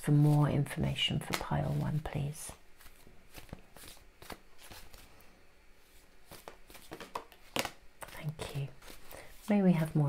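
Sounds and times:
cards being shuffled: 1.2s - 2.1s, 2.8s - 5.2s, 5.8s - 9.9s.

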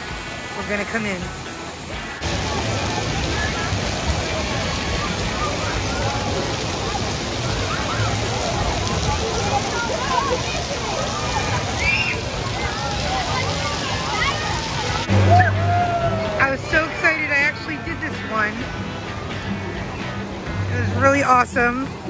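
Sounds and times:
crowd voices: 0.0s - 22.0s
splashing running water: 0.0s - 22.0s
children calling and squealing: 4.6s - 20.7s.

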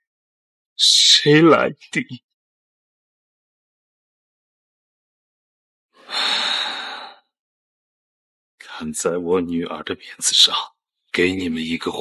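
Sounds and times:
man crying breath: 6.0s - 7.2s.

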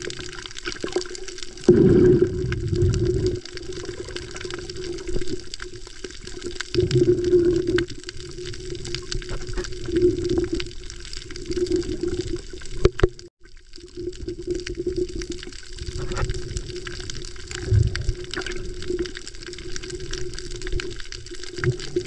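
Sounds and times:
water rushing underwater: 0.0s - 22.0s.

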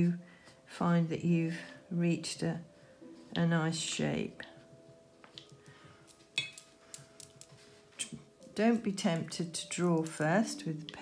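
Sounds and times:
painting tool clinking on palette: 6.3s - 8.1s.

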